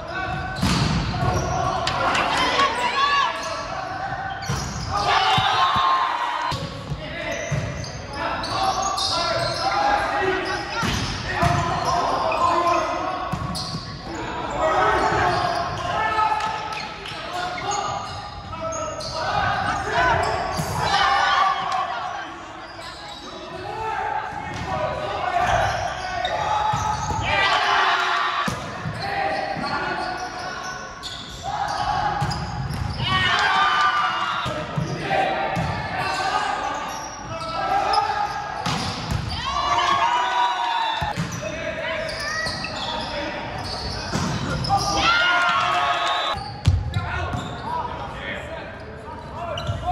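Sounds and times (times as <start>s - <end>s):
players shouting: 0.0s - 13.3s, 14.0s - 48.5s.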